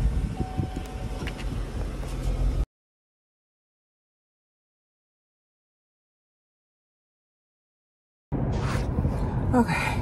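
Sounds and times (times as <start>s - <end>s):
car cabin rumble and hum: 0.0s - 2.6s, 8.3s - 10.0s.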